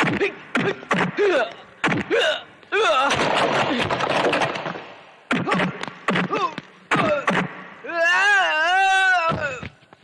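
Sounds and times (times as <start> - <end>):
punch impacts: 0.0 - 2.3, 3.0 - 7.6
man yelling in pain: 6.3 - 9.6.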